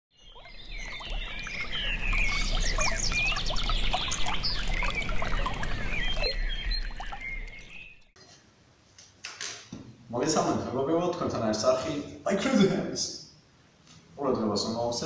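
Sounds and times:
birds singing and chirping: 0.1 - 8.1
shallow river water: 0.2 - 8.1.

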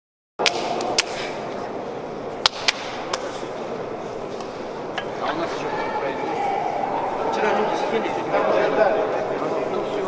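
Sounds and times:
indoor hall hum: 0.4 - 10.0.

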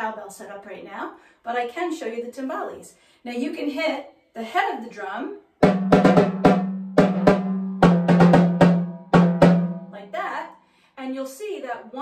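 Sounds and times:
woman speaking: 0.0 - 5.4, 9.9 - 12.0
timbales struck with drumsticks: 5.6 - 10.0.

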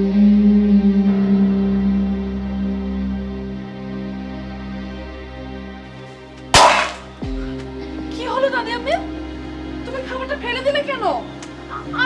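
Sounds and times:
background music: 0.0 - 12.0
metal plate crashing on concrete: 6.6 - 7.1.

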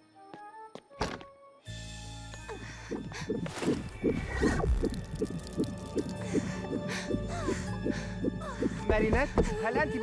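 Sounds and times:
plucked cartoon music: 1.7 - 10.0.

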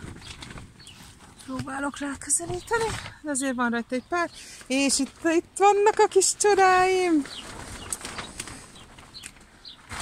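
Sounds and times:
small bird chirping: 0.1 - 5.0.

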